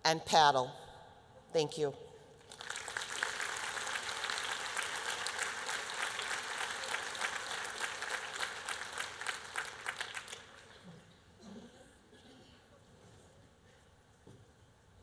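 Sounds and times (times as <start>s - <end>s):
audience applauding: 2.4s - 10.8s.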